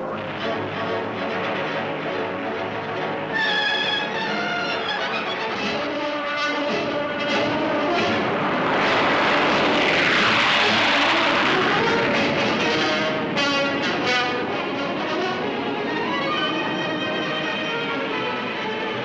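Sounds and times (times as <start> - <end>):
orchestral film music: 0.0 - 9.5, 10.5 - 19.0
jet engines rushing: 0.0 - 19.0.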